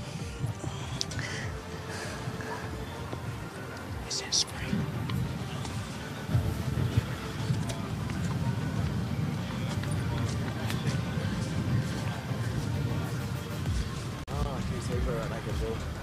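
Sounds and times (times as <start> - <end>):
faint music: 0.0 - 16.0
steady low rumble: 0.0 - 16.0.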